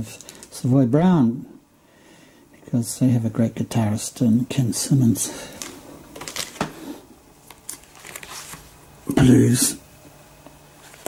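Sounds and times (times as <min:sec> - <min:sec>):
plastic sleeves crinkling: 0:00.0 - 0:00.7, 0:05.3 - 0:08.8, 0:10.8 - 0:11.0.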